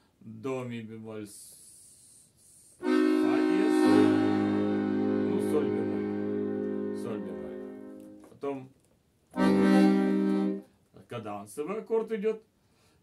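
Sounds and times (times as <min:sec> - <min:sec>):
button accordion sustained chord: 0:02.8 - 0:08.2, 0:09.4 - 0:10.6.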